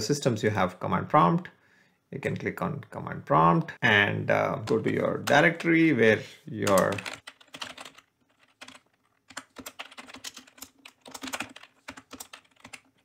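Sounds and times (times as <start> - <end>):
typing on computer keyboard: 6.6 - 13.0.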